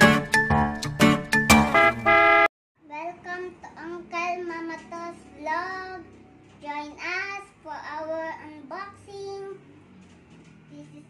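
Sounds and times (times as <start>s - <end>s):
boy singing unaccompanied: 2.9s - 9.6s.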